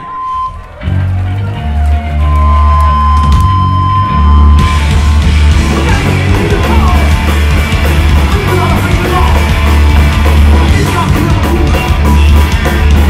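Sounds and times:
electric bass guitar low notes: 0.0 - 13.0
punk band playing: 0.0 - 13.0.

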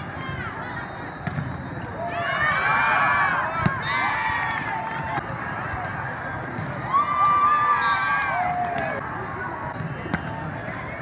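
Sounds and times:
chatter in indoor hall: 0.0 - 4.0, 8.6 - 11.0.

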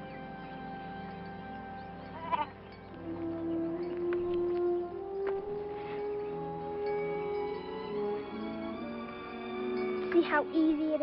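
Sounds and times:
background music steady note: 0.0 - 11.0
goat bleating: 2.2 - 2.5.

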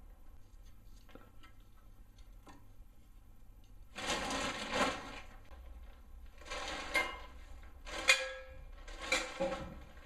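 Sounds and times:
rustling and scraping of objects: 0.3 - 10.0.

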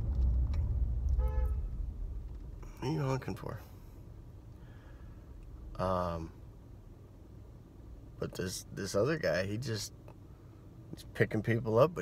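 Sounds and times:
low steady rumble: 0.0 - 12.0
car horn toot: 1.1 - 1.8.

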